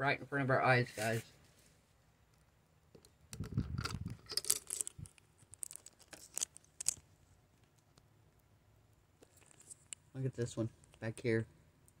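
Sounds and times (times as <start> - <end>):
clicks and scrapes: 3.0 - 8.0, 9.2 - 10.1
camera handling bumps and rustling: 3.4 - 7.1.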